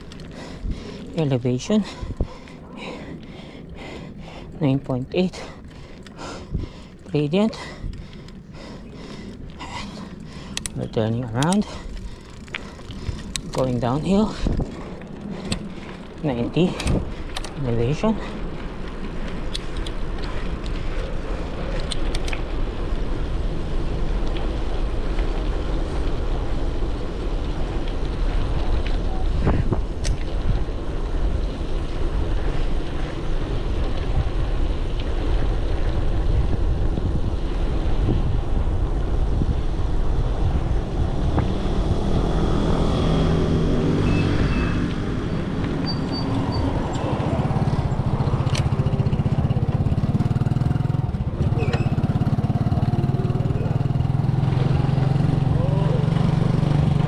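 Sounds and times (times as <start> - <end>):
wind on microphone: 0.0 - 3.0, 6.2 - 57.0
bicycle tyres on asphalt: 0.0 - 57.0
engine humming: 0.0 - 57.0.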